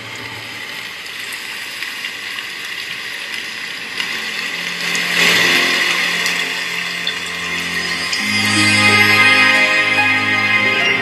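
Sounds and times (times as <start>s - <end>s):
low musical tones: 4.0s - 11.0s.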